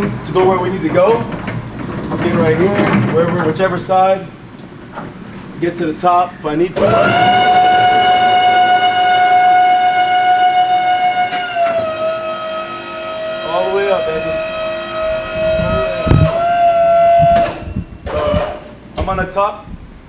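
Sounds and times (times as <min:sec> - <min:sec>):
hydraulic lift whining: 0:06.5 - 0:19.1.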